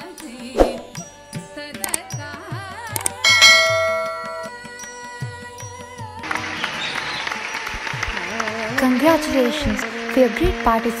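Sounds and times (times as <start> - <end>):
sharp click: 2.9 - 3.2
bell ding: 3.2 - 4.6.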